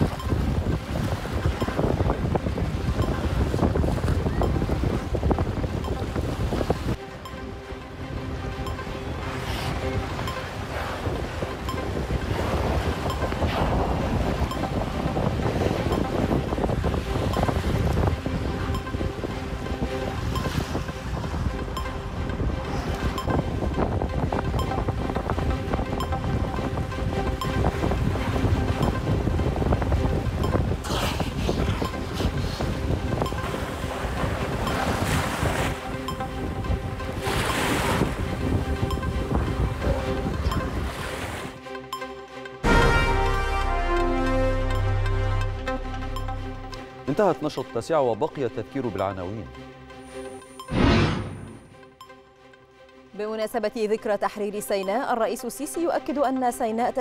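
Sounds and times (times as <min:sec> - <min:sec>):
wind buffeting microphone: 0:00.0 - 0:07.0, 0:07.6 - 0:41.6
faint background music: 0:00.0 - 0:57.0.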